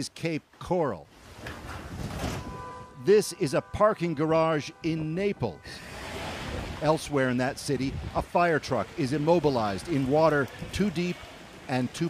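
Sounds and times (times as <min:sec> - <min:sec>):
wind: 0:00.0 - 0:12.0
floodwater rushing: 0:03.0 - 0:12.0.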